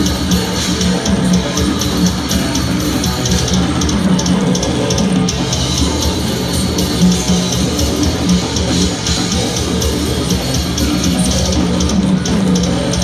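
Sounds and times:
death metal band playing: 0.0s - 13.0s.

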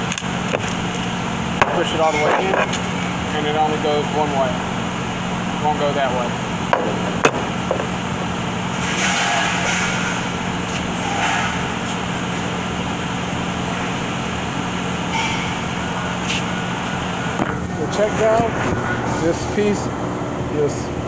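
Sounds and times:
low workshop hum: 0.0s - 21.0s.

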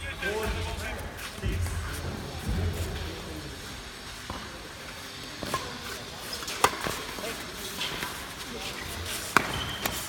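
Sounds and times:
rackets hitting shuttlecock: 6.4s - 8.2s, 9.2s - 10.0s.

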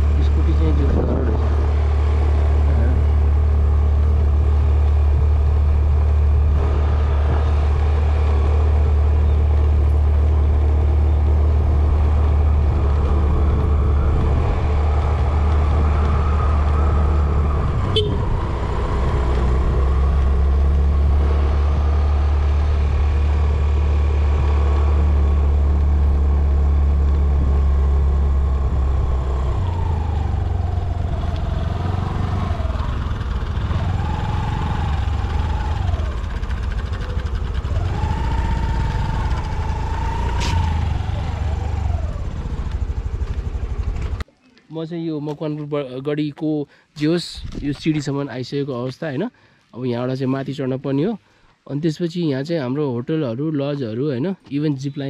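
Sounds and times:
motorcycle engine running: 0.0s - 44.2s
wind rumble on microphone: 0.6s - 1.8s, 11.5s - 23.7s.

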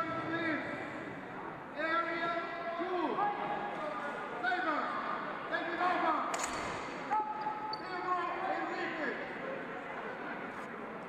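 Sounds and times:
shouted voices echoing in hall: 0.0s - 11.0s.

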